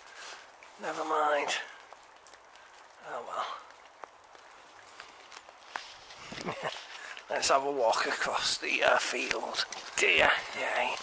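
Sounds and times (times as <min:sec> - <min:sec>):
faint outdoor background: 0:00.0 - 0:11.0
footsteps on snow and leaves: 0:04.0 - 0:08.3.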